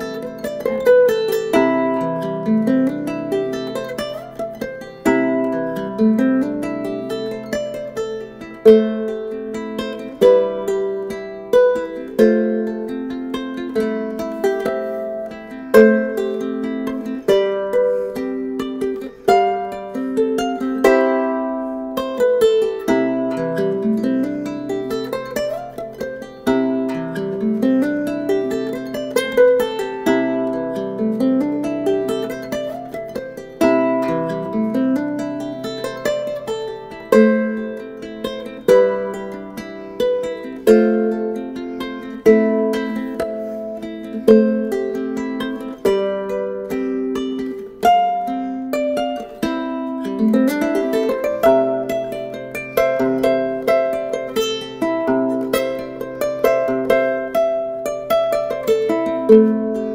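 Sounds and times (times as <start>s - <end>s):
ukulele played fingerstyle: 0.0s - 59.9s.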